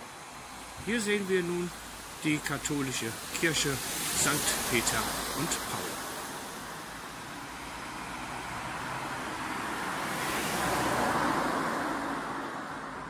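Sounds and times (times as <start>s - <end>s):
car passing: 0.0s - 13.0s.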